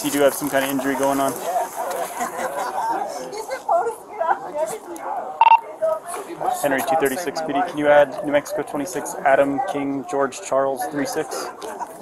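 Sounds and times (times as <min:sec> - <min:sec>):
indistinct voices talking: 0:05.2 - 0:10.1.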